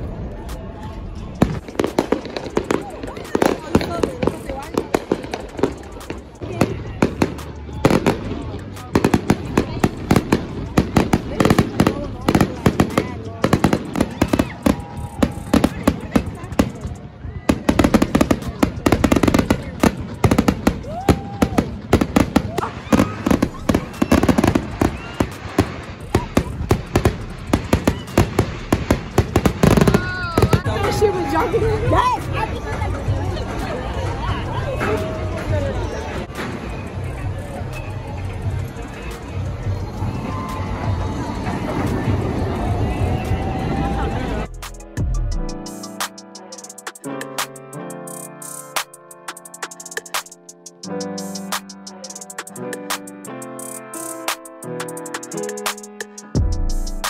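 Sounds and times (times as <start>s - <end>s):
fireworks bangs and crackles: 0.0s - 44.5s.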